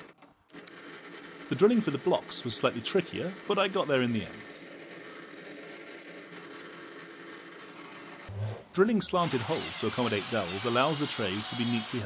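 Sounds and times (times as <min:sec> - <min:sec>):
drill press humming: 0:00.0 - 0:12.0
drill bit drilling through wood: 0:09.0 - 0:12.0.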